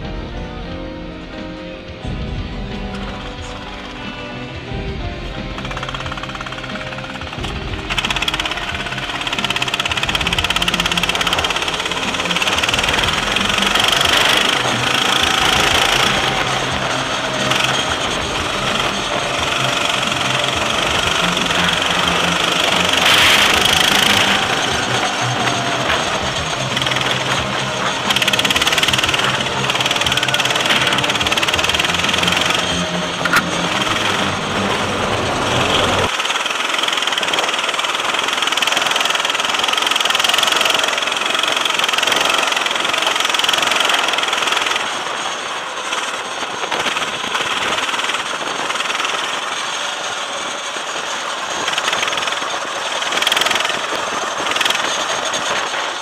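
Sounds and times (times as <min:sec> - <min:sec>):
go-kart engine running hard: 0:00.0 - 0:56.0
wind and road noise: 0:00.0 - 0:56.0.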